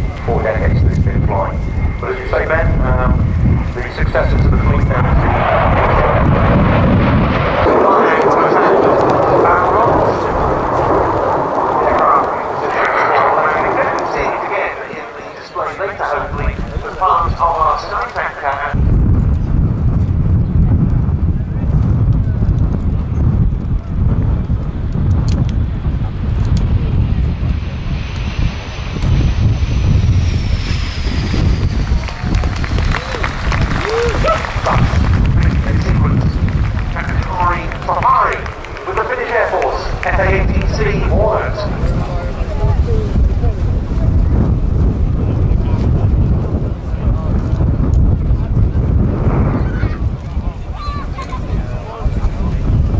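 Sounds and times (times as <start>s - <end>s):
high engine whine: 0.0s - 19.5s, 24.5s - 42.5s
jet engines roaring: 0.0s - 52.9s
low jet rumble: 0.0s - 52.9s.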